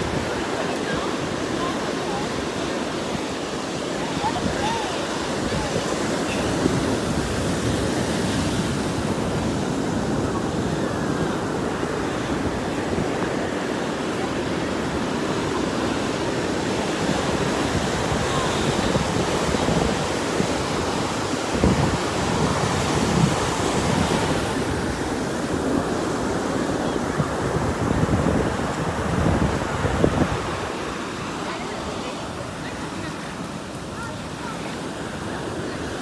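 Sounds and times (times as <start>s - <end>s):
surf washing through shallow water: 0.0s - 36.0s
wind buffeting microphone: 0.0s - 36.0s.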